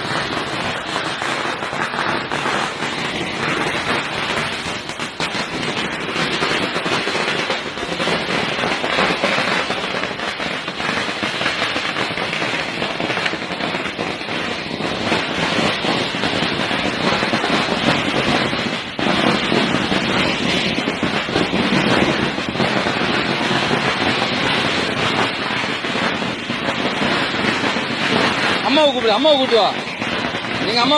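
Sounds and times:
string of firecrackers crackling: 0:00.0 - 0:30.9.

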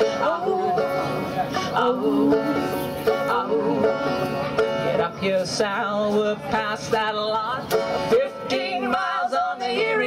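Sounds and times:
acoustic folk band playing: 0:00.0 - 0:10.0
banjo picking: 0:00.0 - 0:10.0.

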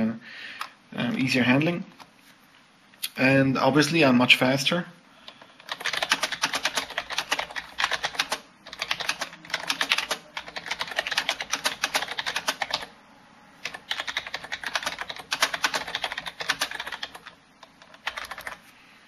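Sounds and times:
fast keyboard typing: 0:05.6 - 0:12.9, 0:13.6 - 0:18.6.

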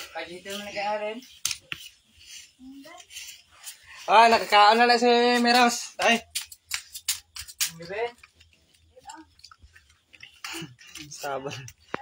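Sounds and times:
person speaking: 0:00.0 - 0:06.4.

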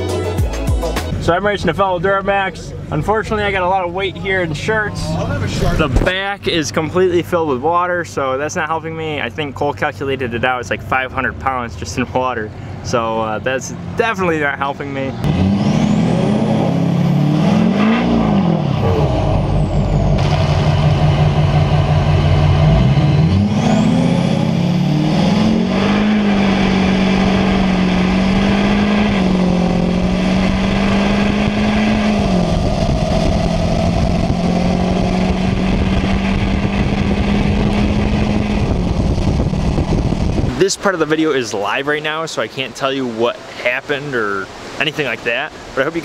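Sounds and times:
diesel engine at full throttle: 0:01.0 - 0:41.0.

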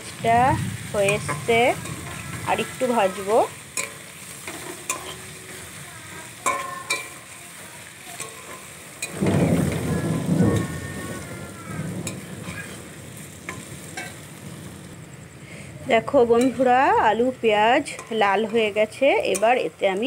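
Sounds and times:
low rumble of thunder: 0:00.0 - 0:03.7, 0:09.1 - 0:17.7
potatoes and onions sizzling in oil: 0:00.0 - 0:20.0
spatula scraping pan: 0:01.0 - 0:09.2, 0:12.0 - 0:14.3.

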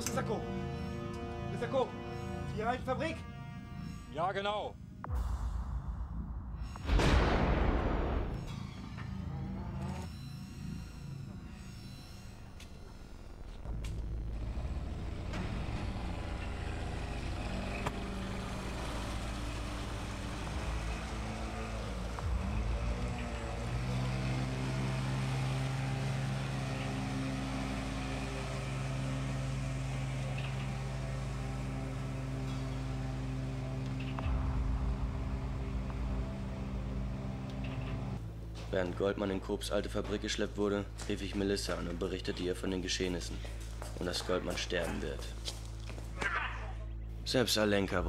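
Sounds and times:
low rumble: 0:05.0 - 0:24.1
outboard motor running: 0:14.1 - 0:38.2.

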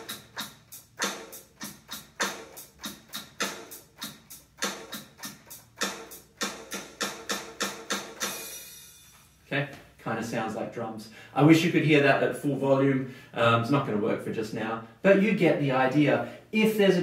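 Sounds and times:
electronic drum pattern: 0:00.0 - 0:09.1.

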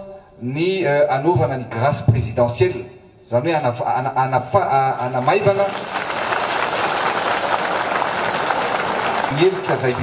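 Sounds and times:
crowd applauding: 0:05.0 - 0:10.0.

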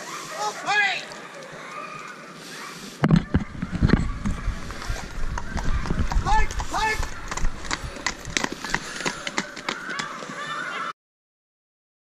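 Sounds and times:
horse hooves clopping on tarmac: 0:03.7 - 0:10.5.

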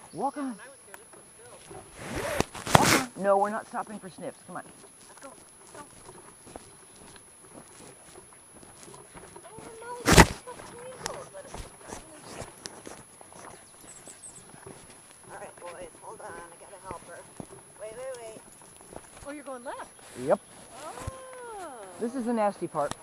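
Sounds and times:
rig and paws clicking and rattling: 0:04.6 - 0:20.0.

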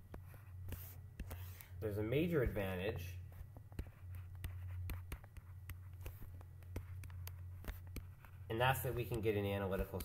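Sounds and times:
low electrical hum: 0:00.0 - 0:10.0
stylus tapping and scratching: 0:00.0 - 0:10.0.

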